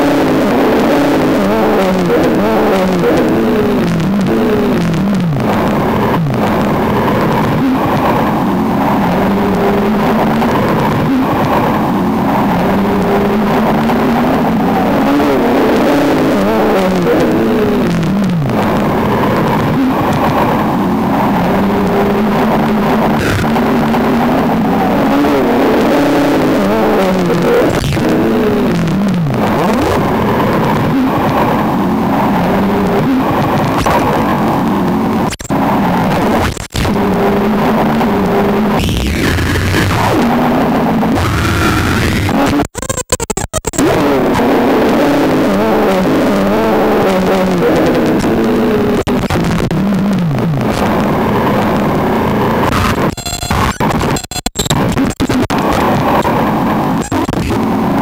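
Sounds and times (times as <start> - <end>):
swooping electronic drone: 0.0 - 42.5.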